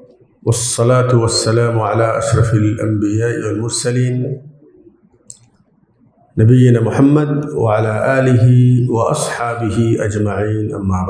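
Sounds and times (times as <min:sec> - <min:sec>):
man speaking into a microphone: 0:00.0 - 0:04.9, 0:06.3 - 0:11.0.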